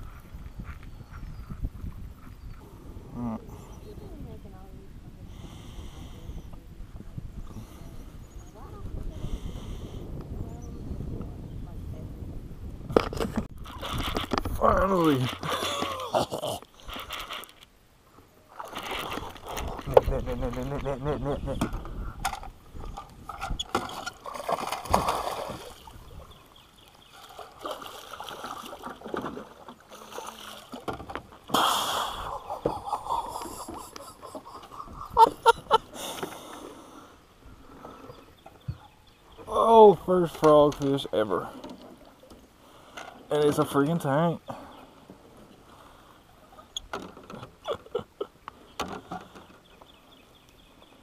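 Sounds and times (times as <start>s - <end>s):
fish thrashing and splashing: 13.6s - 17.6s, 18.5s - 20.5s, 22.9s - 26.1s, 27.1s - 30.9s.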